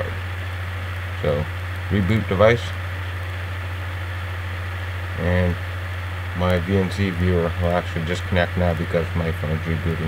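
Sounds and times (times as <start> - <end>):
low hum with hiss: 0.0 - 10.0.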